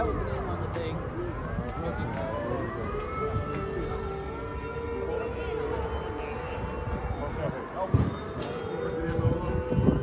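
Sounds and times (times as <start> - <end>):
passers-by talking: 0.0 - 10.0
traffic: 0.0 - 10.0.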